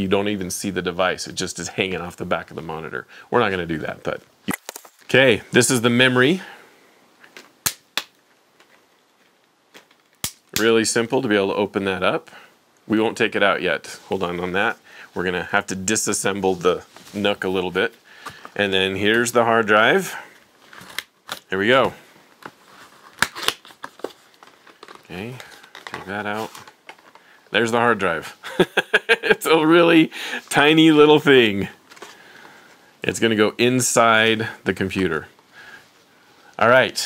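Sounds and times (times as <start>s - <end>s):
plastic pack snapping: 4.5s - 5.0s, 22.4s - 27.2s
cardboard and plastic crinkling: 20.4s - 27.4s.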